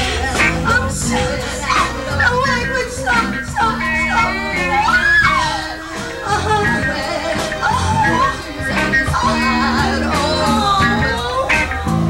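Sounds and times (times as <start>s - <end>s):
live band playing: 0.0s - 12.0s
voices over music: 0.0s - 12.0s.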